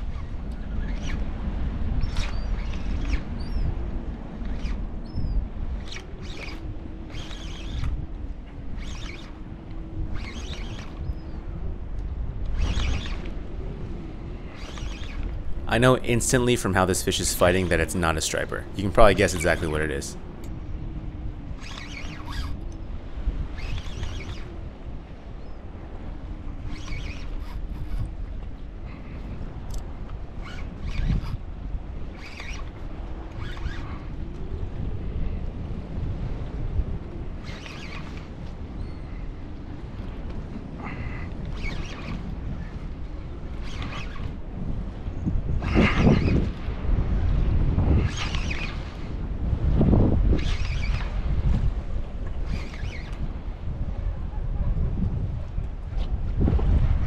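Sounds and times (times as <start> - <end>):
wind buffeting microphone: 0.0 - 57.0
fishing reel clicks and knocks: 8.7 - 9.4, 14.6 - 15.5, 23.6 - 24.6, 32.1 - 33.9, 37.4 - 38.6, 43.5 - 44.4, 48.0 - 49.0, 50.3 - 51.2.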